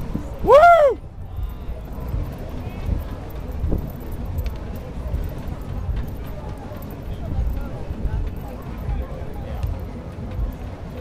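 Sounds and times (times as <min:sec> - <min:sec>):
faint voices: 0:00.0 - 0:11.0
wind buffeting microphone: 0:00.0 - 0:11.0.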